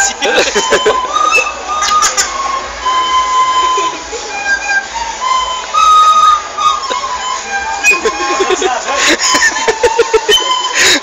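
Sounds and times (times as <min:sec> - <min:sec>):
recorders playing melody: 0:00.0 - 0:11.0
voices: 0:00.0 - 0:11.0.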